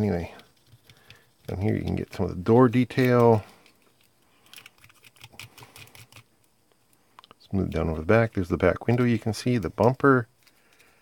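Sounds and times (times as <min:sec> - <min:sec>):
foil ticks and crinkles: 0:00.0 - 0:11.0.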